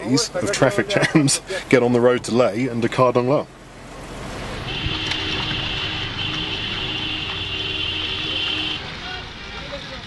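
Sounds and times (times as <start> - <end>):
vehicle engines rumbling: 0.0 - 10.0.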